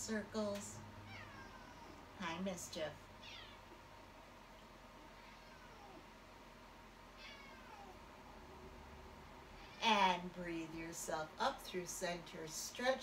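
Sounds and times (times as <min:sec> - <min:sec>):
cat meowing faintly: 0:05.2 - 0:06.1, 0:07.2 - 0:08.0.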